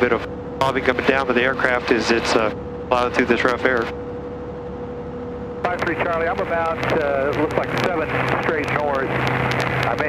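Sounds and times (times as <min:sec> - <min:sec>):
radio talk: 0:00.0 - 0:04.0, 0:05.6 - 0:10.0
light aircraft engine drone: 0:00.0 - 0:10.0.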